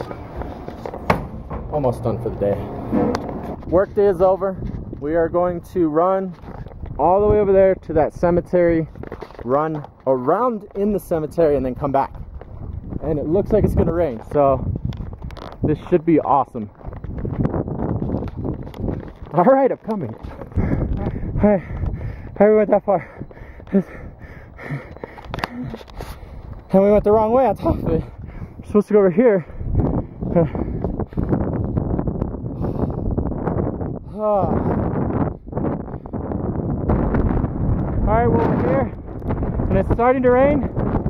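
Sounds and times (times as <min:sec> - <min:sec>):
wind buffeting microphone: 0:00.0 - 0:41.0
running footsteps on pavement: 0:08.8 - 0:26.9, 0:29.4 - 0:32.4.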